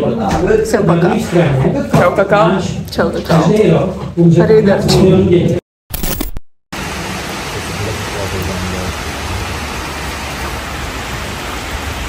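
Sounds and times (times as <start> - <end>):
steady rain falling: 6.8 - 12.0.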